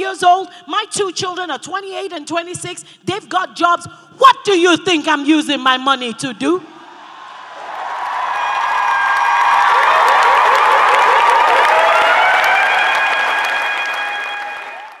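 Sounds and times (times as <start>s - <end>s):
voices shouting and whooping: 7.4s - 15.0s
audience clapping: 7.6s - 15.0s.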